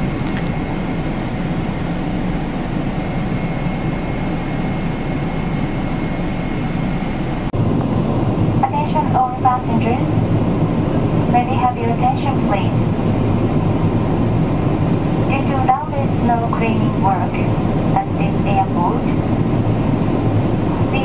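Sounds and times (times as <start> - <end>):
airplane cabin noise: 0.0 - 21.0
announcement over pa: 8.6 - 10.6, 11.2 - 12.9, 15.1 - 19.4.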